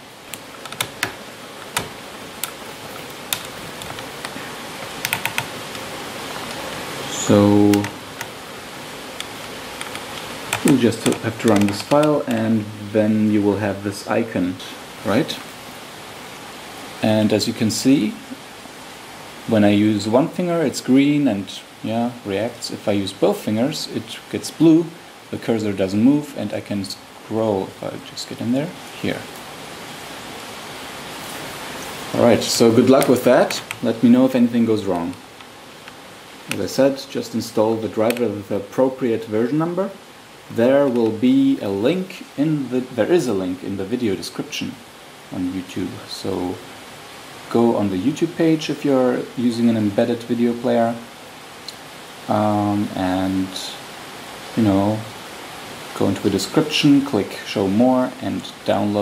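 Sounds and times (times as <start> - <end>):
steady hiss: 0.0 - 59.0
man's voice: 7.1 - 8.0, 10.6 - 15.4, 32.1 - 35.2, 36.5 - 46.6, 47.5 - 51.0, 54.6 - 55.1.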